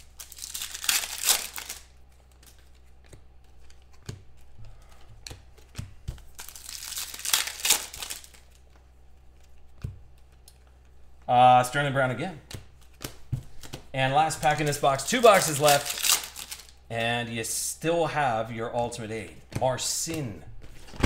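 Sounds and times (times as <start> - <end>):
foil wrapper tearing and crinkling: 0.0 - 2.7, 6.3 - 8.6, 15.0 - 16.8
cards clicking: 0.1 - 8.8.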